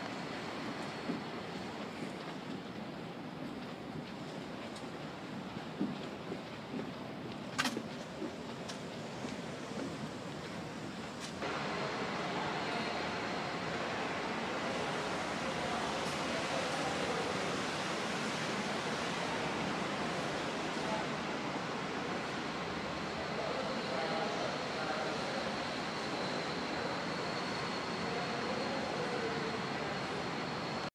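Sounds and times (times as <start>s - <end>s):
wind on ship deck: 0.0s - 11.5s
faint high whine: 0.0s - 30.9s
ship interior rush: 0.0s - 30.9s.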